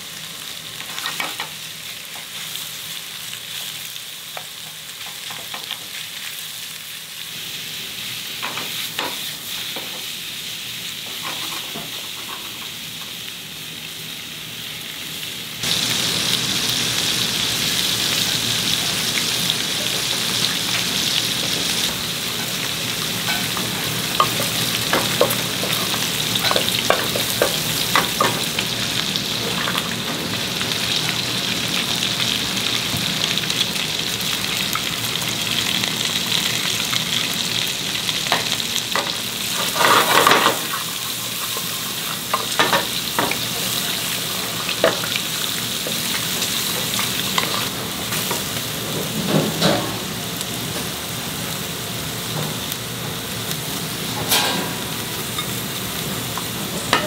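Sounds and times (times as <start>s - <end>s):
vegetables sizzling in oil: 0.0s - 57.0s.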